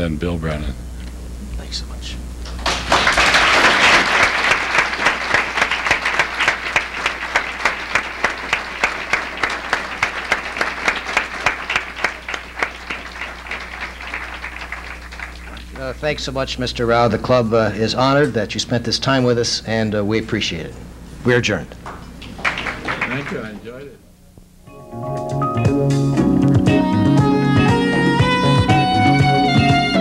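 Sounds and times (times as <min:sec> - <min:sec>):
low electrical hum: 0:00.0 - 0:24.8
audience applause: 0:02.5 - 0:16.0, 0:21.9 - 0:23.8, 0:28.0 - 0:29.8.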